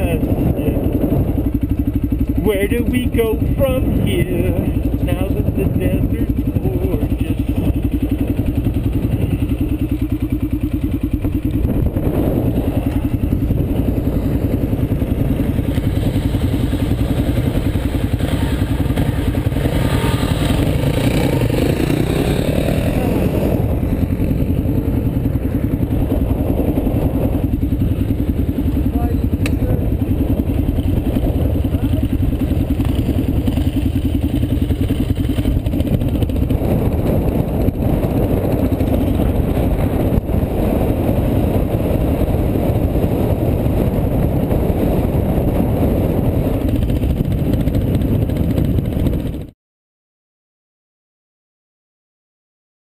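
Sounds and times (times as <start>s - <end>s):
dirt bike engines idling: 0.0s - 49.4s.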